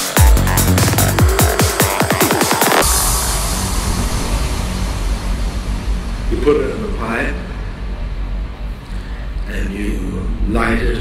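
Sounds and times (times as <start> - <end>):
deep bass rumble: 0.2 - 11.0
loud wash of noise: 1.7 - 10.7.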